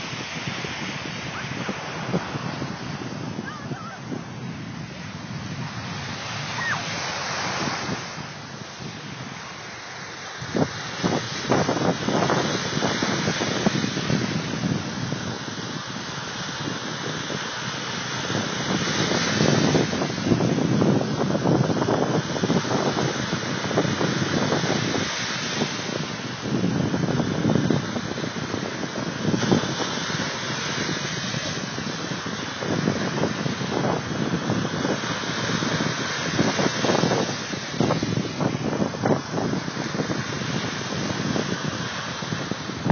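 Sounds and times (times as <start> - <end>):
waves washing onto beach: 0.0 - 42.9
wind buffeting microphone: 0.0 - 42.9.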